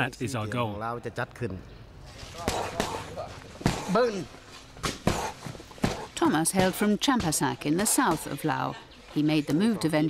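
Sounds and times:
punches and kicks hitting pads: 2.4s - 4.2s, 4.8s - 8.2s.

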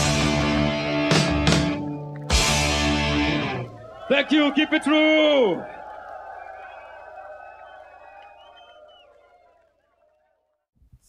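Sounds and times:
crowd noise: 1.8s - 10.4s.

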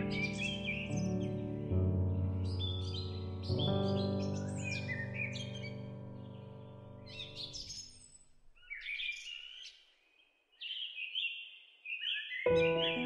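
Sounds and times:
soft held music chord: 0.0s - 7.6s, 12.5s - 13.0s
songbirds chirping: 0.0s - 13.0s.

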